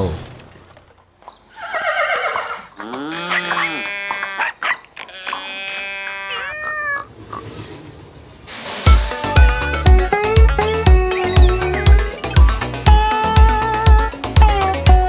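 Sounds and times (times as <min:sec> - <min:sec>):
cartoon animal calls: 0:01.5 - 0:07.5, 0:10.6 - 0:15.0.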